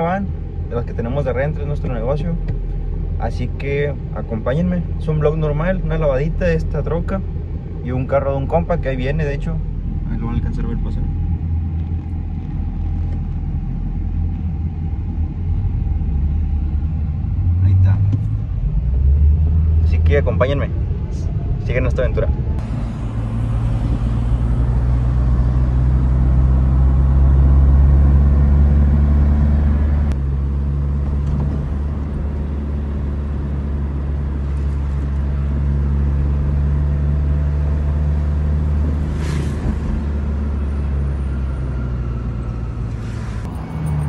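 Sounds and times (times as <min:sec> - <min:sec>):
car engine and road noise: 0:00.0 - 0:44.0.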